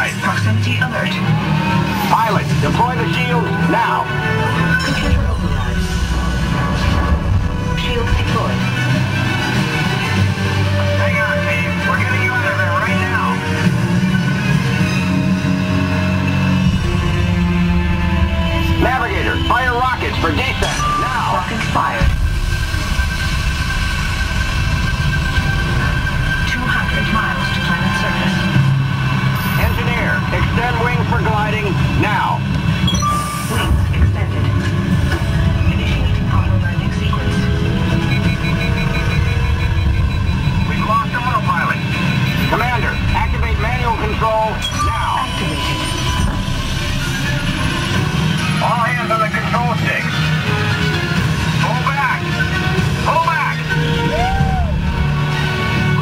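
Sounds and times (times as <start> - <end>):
heavy low rumble: 0.0 - 56.0
music: 0.0 - 56.0
voices: 7.6 - 13.7, 18.7 - 22.2, 26.4 - 28.6, 33.4 - 46.4, 48.4 - 50.5
fast beeps: 20.4 - 22.2, 29.3 - 30.2, 32.8 - 33.7, 37.0 - 47.6.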